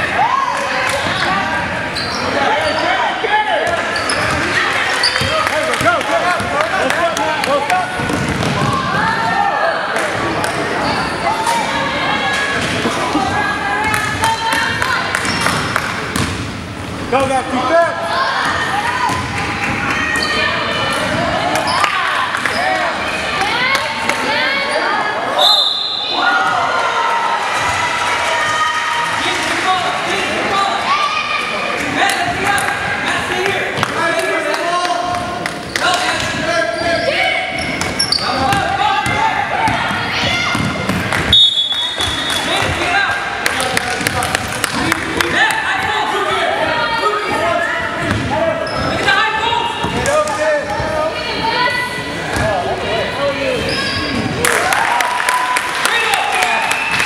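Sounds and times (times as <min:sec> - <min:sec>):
sneakers squeaking: 0:00.8 - 0:06.6, 0:12.5 - 0:17.4, 0:18.4 - 0:23.0, 0:35.1 - 0:43.0, 0:47.2 - 0:51.0, 0:53.4 - 0:54.4
basketball bouncing on wooden court: 0:08.0 - 0:09.0, 0:15.2 - 0:16.4, 0:37.7 - 0:41.3, 0:48.0 - 0:48.3.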